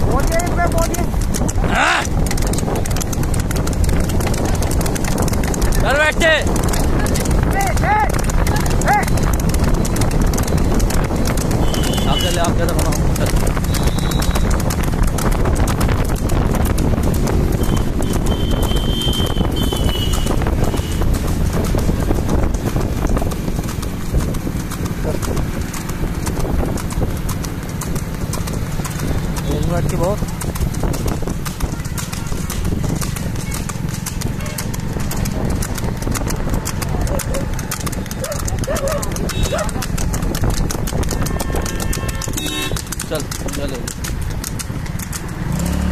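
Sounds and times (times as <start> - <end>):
hooves clip-clopping on asphalt: 0.0 - 45.9
person shouting: 1.7 - 2.1, 7.5 - 9.1.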